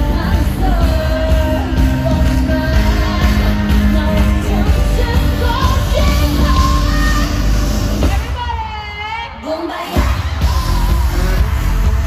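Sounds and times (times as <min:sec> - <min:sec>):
pop song over sound system: 0:00.0 - 0:12.0
heavy bass beat: 0:10.4 - 0:12.0.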